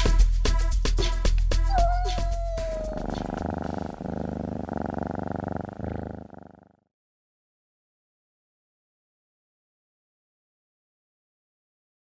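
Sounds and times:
music with a beat: 0:00.0 - 0:03.2
cat purring: 0:01.7 - 0:06.9.

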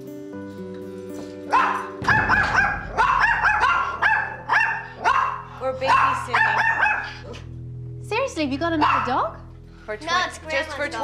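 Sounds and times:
background music: 0:00.0 - 0:11.0
small dogs barking: 0:01.5 - 0:07.5, 0:08.8 - 0:09.4.

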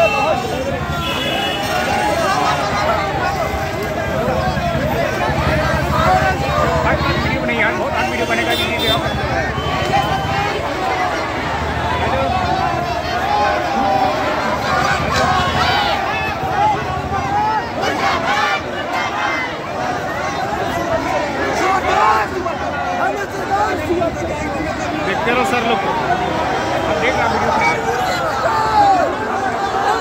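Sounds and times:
crowd of protesters calling out: 0:00.0 - 0:30.0.

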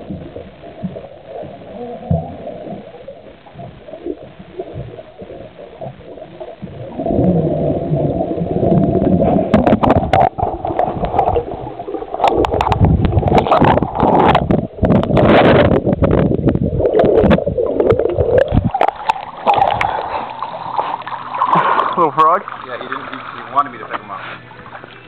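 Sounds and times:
muffled underwater churning and bubbling: 0:00.0 - 0:25.0.

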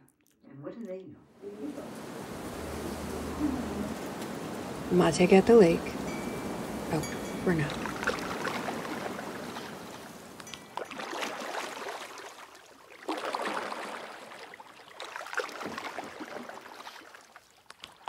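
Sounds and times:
little water splashes: 0:01.4 - 0:18.0
small waves lapping at shore: 0:01.4 - 0:18.0.

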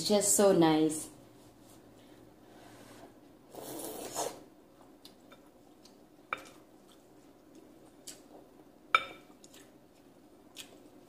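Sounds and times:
person slurping noodles: 0:03.5 - 0:04.5.

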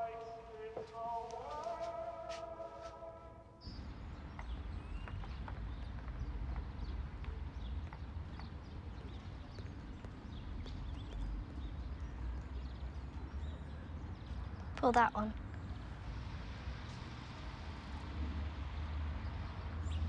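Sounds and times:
low street rumble: 0:00.0 - 0:20.0.

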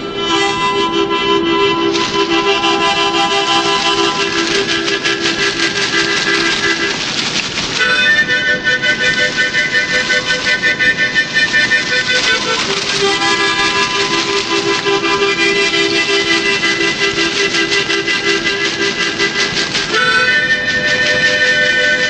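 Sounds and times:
harmonica playing chords: 0:00.0 - 0:07.0, 0:07.8 - 0:22.0.

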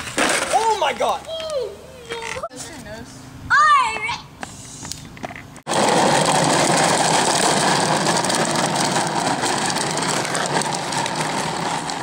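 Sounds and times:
plastic wheels rolling on asphalt: 0:00.0 - 0:02.5, 0:05.2 - 0:12.0.

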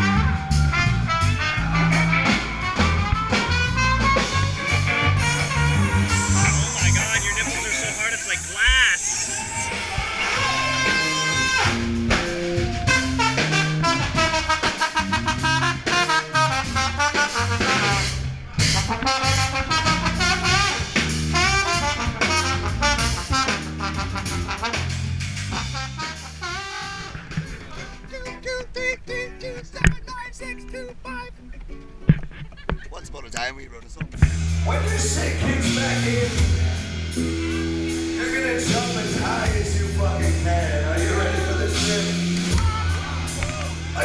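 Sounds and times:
trumpet and trombone horns: 0:00.0 - 0:28.1
ska metal band music: 0:00.0 - 0:31.5, 0:34.1 - 0:44.0.

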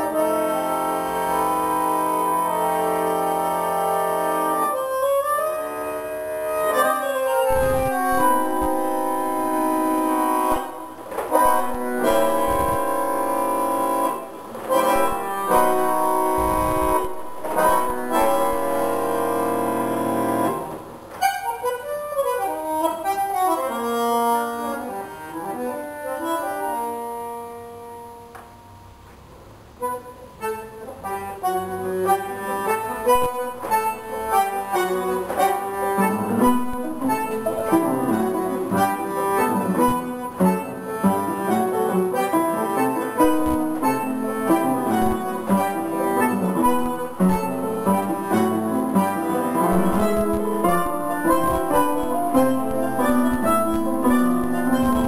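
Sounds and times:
bandoneon: 0:00.0 - 0:28.9, 0:29.8 - 0:55.0
piano: 0:00.0 - 0:29.0, 0:29.8 - 0:55.0.

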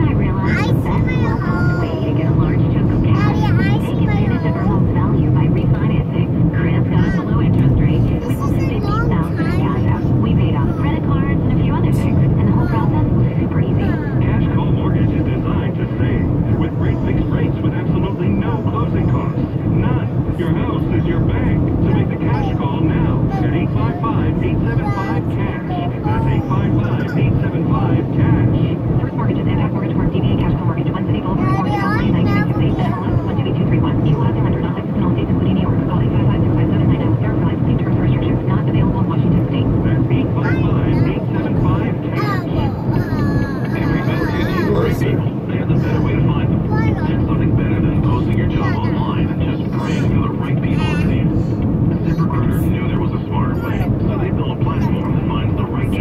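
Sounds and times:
car road and engine noise: 0:00.0 - 0:56.0
faint indistinct talk: 0:00.0 - 0:56.0.

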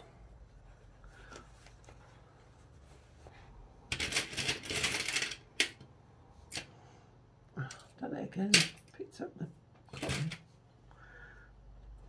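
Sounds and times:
plastic clips rattling: 0:08.5 - 0:08.9.

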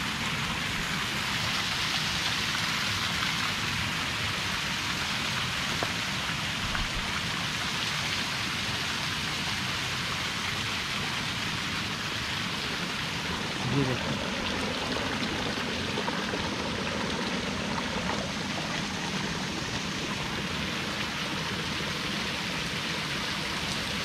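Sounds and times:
stream water over rocks: 0:00.0 - 0:24.0.

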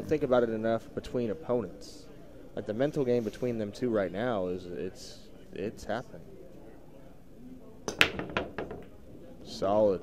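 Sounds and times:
cue ball cracking into rack: 0:07.9 - 0:09.0
cue clicking on cue ball: 0:07.9 - 0:09.0
pool balls clacking: 0:07.9 - 0:09.0.

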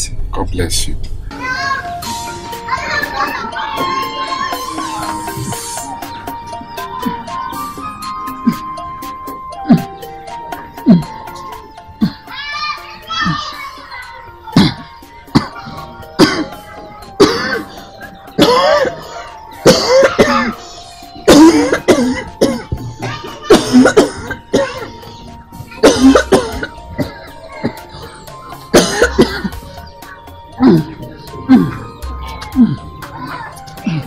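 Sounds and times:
background music with long notes: 0:01.3 - 0:34.0
woman coughing: 0:14.6 - 0:16.6, 0:17.2 - 0:17.7, 0:18.4 - 0:20.5, 0:21.3 - 0:22.8, 0:23.5 - 0:24.9, 0:25.8 - 0:27.2, 0:28.7 - 0:29.6.

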